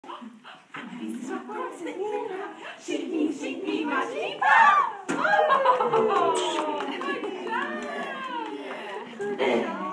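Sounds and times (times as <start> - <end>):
indistinct voices: 0.0 - 9.9.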